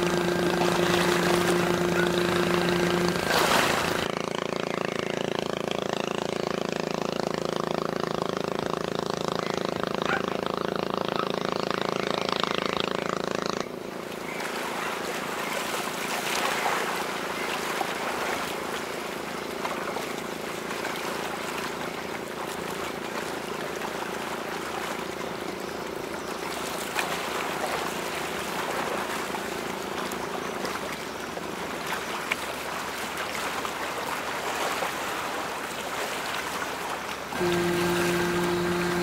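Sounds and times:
rush of water and wind: 0.0s - 4.1s, 14.0s - 25.5s, 26.3s - 39.0s
motorboat engine running: 0.0s - 39.0s
steady engine drone: 0.0s - 39.0s.

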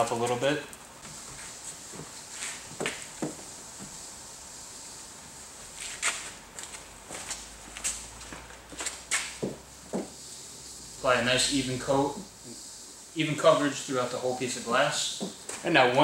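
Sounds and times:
sheet wiping window glass: 1.0s - 6.4s
footsteps: 5.7s - 10.2s.

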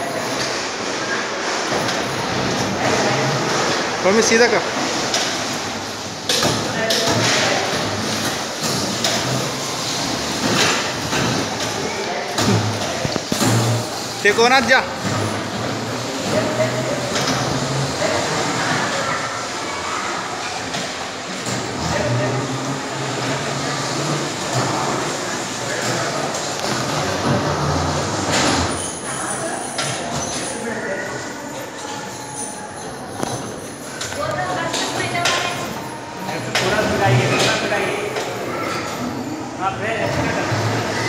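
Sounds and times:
bumper cars rolling on metal floor: 0.0s - 41.0s
bumper cars rumbling on steel floor: 20.2s - 29.0s.

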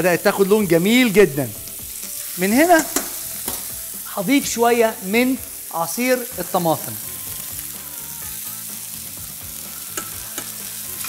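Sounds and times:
meat and vegetables sizzling in pan: 0.0s - 11.0s.

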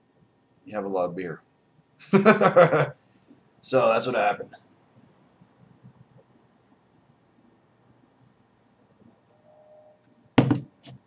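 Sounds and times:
faint steady tone: 3.0s - 10.4s.

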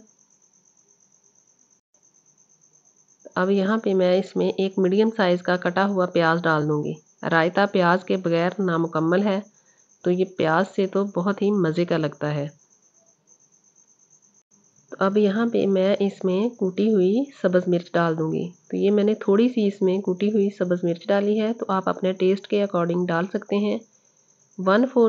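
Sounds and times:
cricket chirping: 0.0s - 25.0s.

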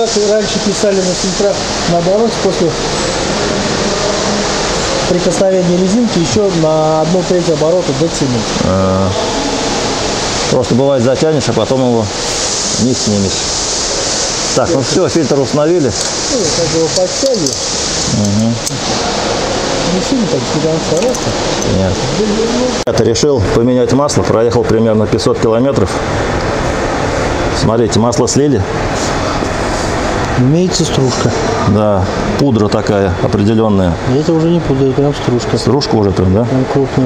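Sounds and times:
indistinct talk: 0.0s - 9.5s, 27.6s - 37.0s
workshop background hiss: 0.0s - 37.0s
man speaking: 5.1s - 9.2s, 12.8s - 13.4s, 14.6s - 18.8s, 19.9s - 26.0s, 30.4s - 37.0s.

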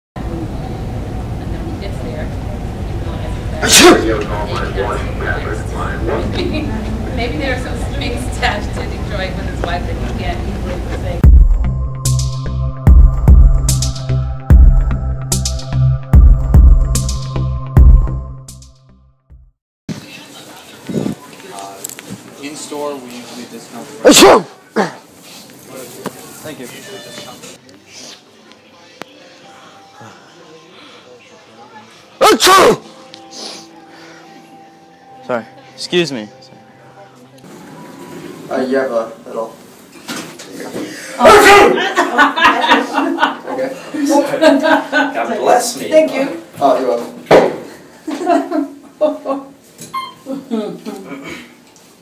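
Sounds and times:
low store hum: 0.2s - 11.3s
man fake sneezing: 3.6s - 4.1s.

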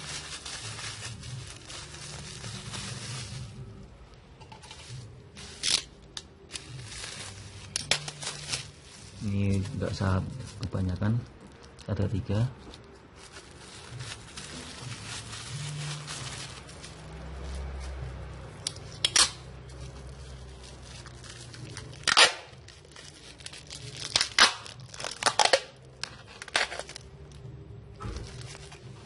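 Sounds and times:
wrapping material rustling: 0.0s - 29.0s.

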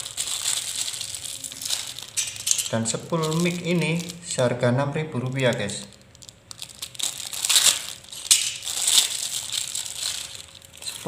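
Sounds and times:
plastic bag crinkling: 0.0s - 4.4s, 5.2s - 11.0s.

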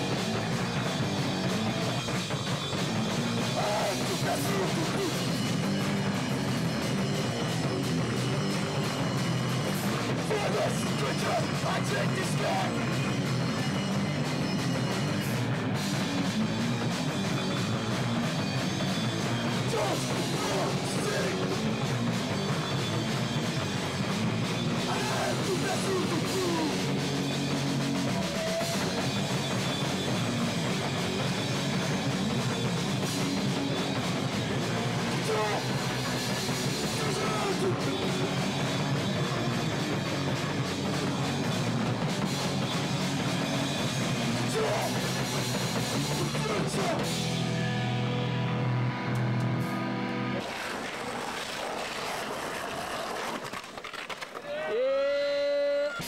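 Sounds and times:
bass guitar: 0.0s - 50.7s
distorted guitar: 0.0s - 51.9s
drum kit: 0.0s - 54.1s.

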